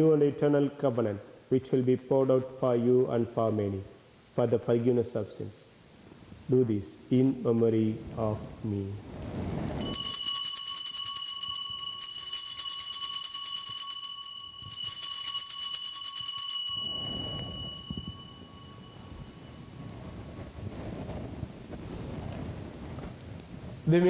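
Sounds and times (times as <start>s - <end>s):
altar bells ringing: 9.8s - 20.4s.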